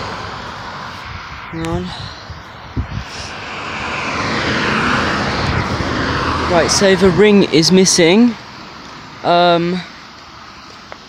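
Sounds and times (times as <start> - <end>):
vehicle engine and tyre noise: 0.0 - 11.0.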